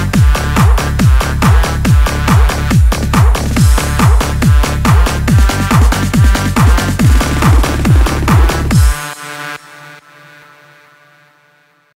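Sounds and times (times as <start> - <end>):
held synth chord: 3.6 - 10.8.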